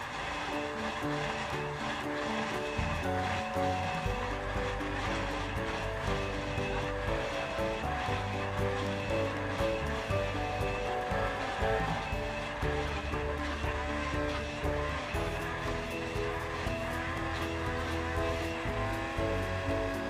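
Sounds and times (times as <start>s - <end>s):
background music with bass: 0.0s - 20.0s
blender motor running: 0.0s - 20.0s.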